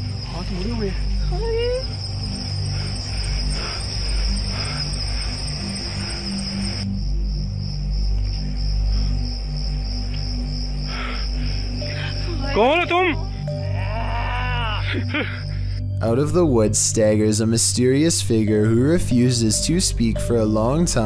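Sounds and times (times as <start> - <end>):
crickets trilling: 0.0 - 21.0
low droning music: 0.0 - 21.0.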